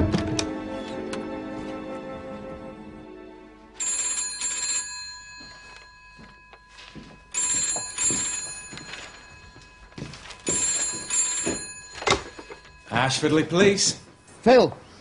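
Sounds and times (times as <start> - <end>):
telephone bell double ring: 3.8 - 14.6.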